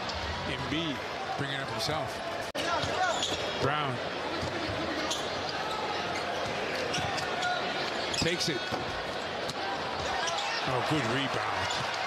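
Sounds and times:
shoe squeaks: 3.0 - 3.4.

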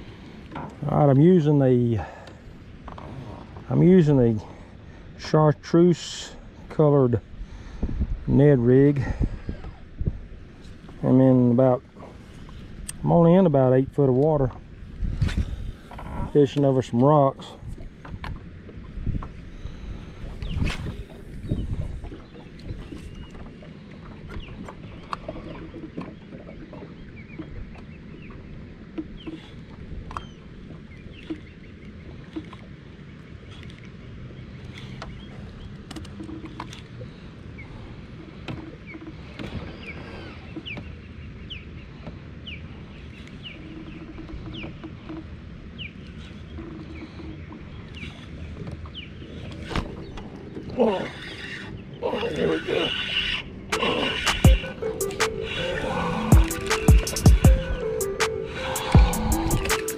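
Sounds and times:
water lapping around kayak: 0.0 - 59.9
wind rumble on microphone: 6.6 - 23.6.

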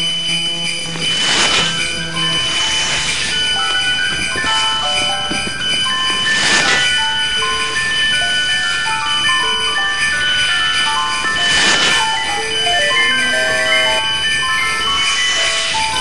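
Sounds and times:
electronic toy beeping melodies: 0.0 - 2.6, 11.8 - 16.0.

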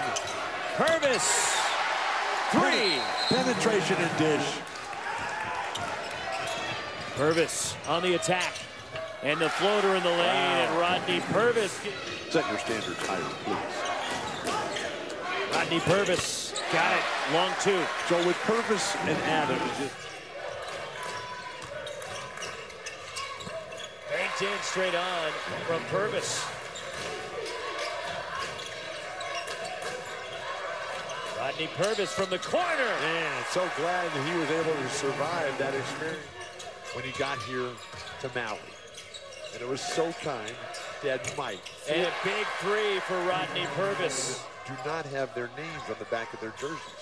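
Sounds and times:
arena crowd noise: 0.0 - 47.0.

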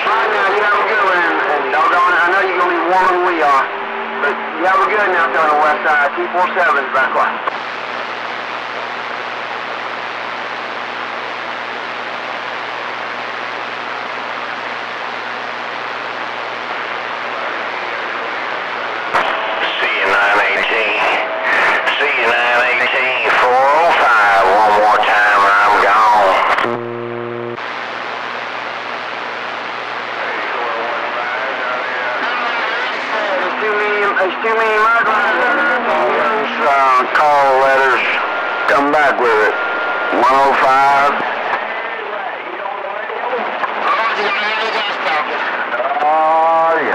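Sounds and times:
radio static hiss: 0.0 - 46.9
garbled voice over radio: 19.6 - 26.7, 30.2 - 41.3
low hum: 25.7 - 30.3.

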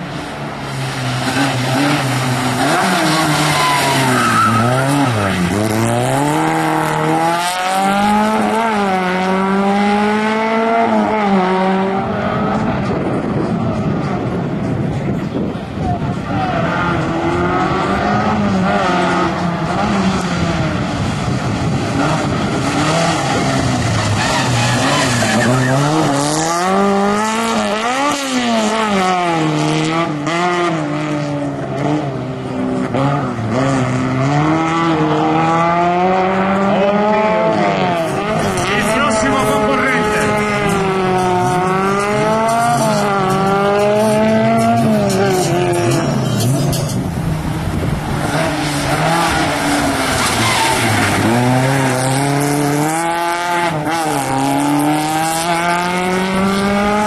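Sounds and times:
car engine revving: 0.0 - 57.0
tyre squeal: 1.2 - 5.7, 23.2 - 26.3, 48.4 - 52.4.

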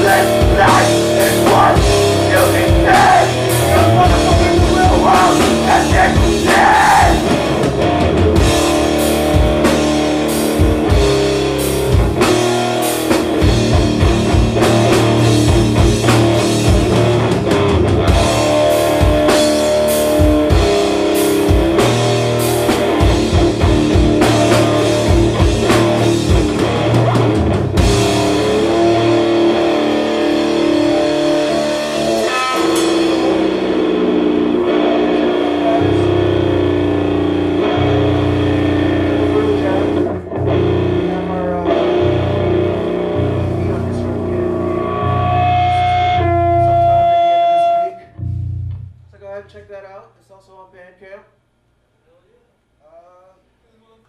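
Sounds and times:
drum kit pounding: 0.0 - 47.6
live rock band: 0.0 - 49.1.

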